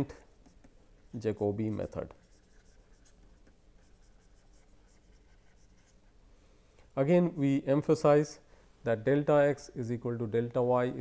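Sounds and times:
stylus scratching on tablet: 0.0 - 6.2.

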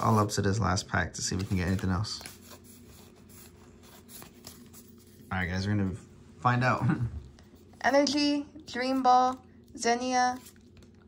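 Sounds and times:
trading cards rustling: 1.2 - 5.6.

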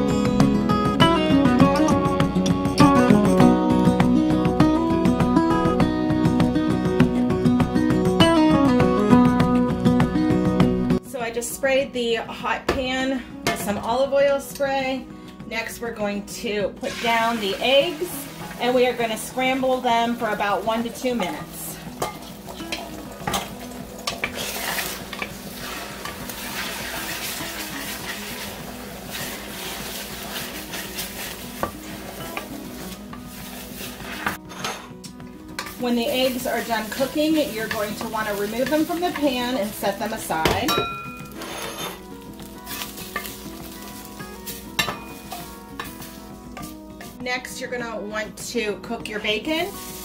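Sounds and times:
eggs sizzling in a frying pan: 16.8 - 34.4, 35.3 - 47.2, 49.2 - 50.0
wooden spatula scraping a pan: 24.1 - 34.9, 35.6 - 40.4, 41.3 - 46.7, 49.7 - 50.0
spoon knocking on pan: 44.8 - 47.2.

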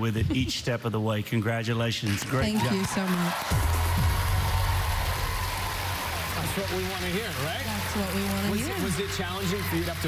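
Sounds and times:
audience applause: 2.1 - 10.0.

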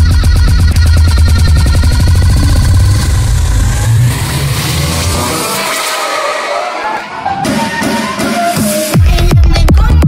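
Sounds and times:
electronic club music: 0.0 - 10.0.

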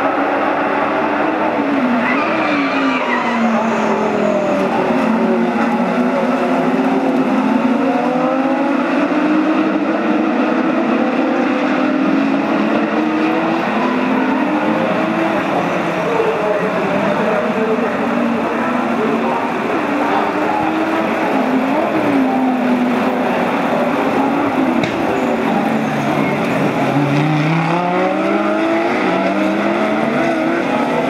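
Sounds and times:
race car engines: 0.0 - 31.0.

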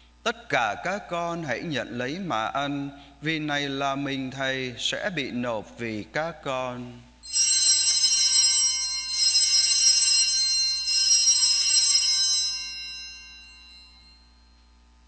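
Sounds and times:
altar bells ringing: 7.2 - 14.8.

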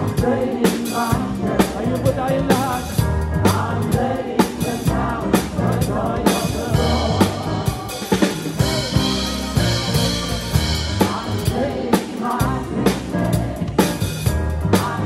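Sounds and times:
choir singing: 0.0 - 2.1, 3.4 - 14.1, 14.7 - 15.0
drum kit beat: 0.0 - 15.0
live band music: 0.0 - 15.0.

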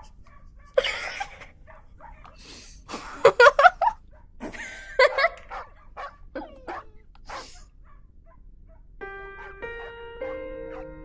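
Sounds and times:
puppy barking and yipping: 1.6 - 2.4, 5.0 - 8.8, 9.4 - 11.0
breathy huffs: 7.2 - 7.8
soft music with held notes: 9.0 - 11.0.

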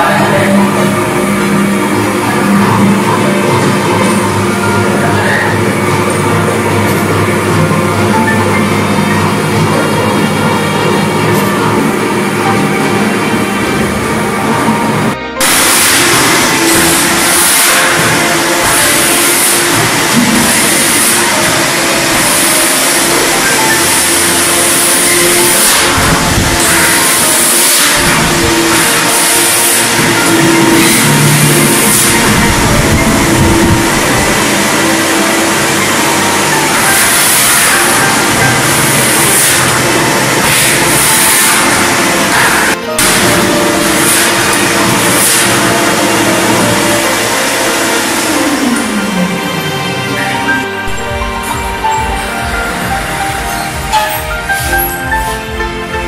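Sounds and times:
background music: 0.0 - 56.0
wet-dry vacuum motor running: 0.0 - 56.0.

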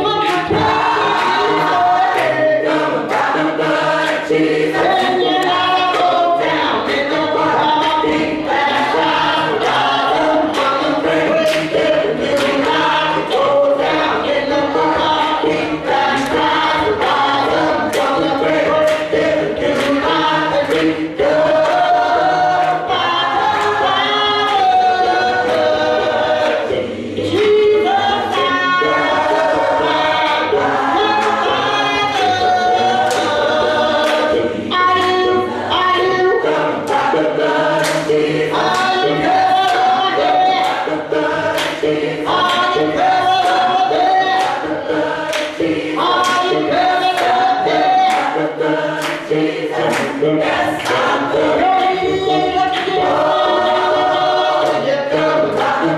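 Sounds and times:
woman singing into a microphone: 0.0 - 2.7, 4.7 - 8.5, 27.2 - 36.9
hand clapping: 0.0 - 27.6, 28.3 - 55.9
congregation singing: 0.0 - 55.9.

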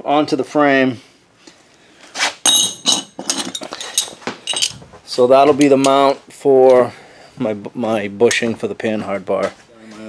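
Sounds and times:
metal brackets clinking: 2.5 - 4.8.

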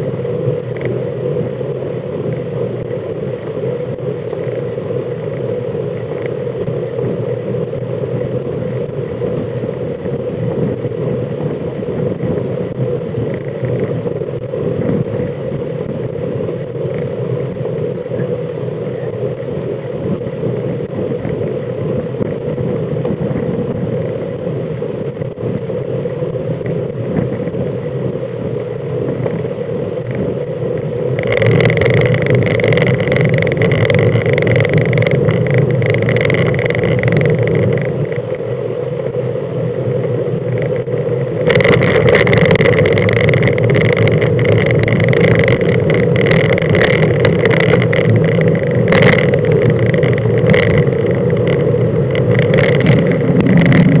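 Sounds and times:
road rumble: 0.0 - 54.0
wind rushing over microphone: 0.0 - 54.0
sharp clicks and knocks: 31.2 - 38.3, 40.5 - 54.0.

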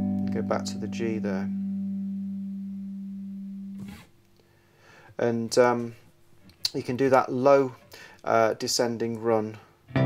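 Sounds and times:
guitar chord ringing: 0.0 - 3.8.

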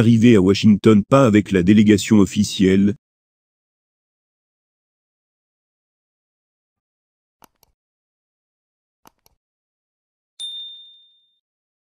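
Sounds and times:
high notification bell ding: 10.4 - 11.4.

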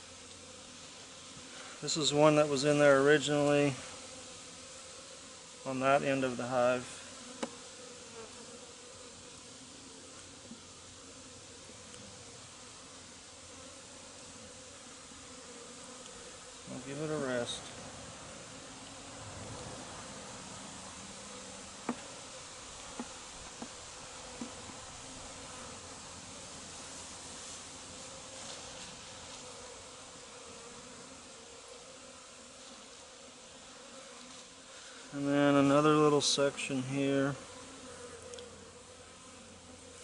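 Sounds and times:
honey bees buzzing: 0.0 - 40.0.

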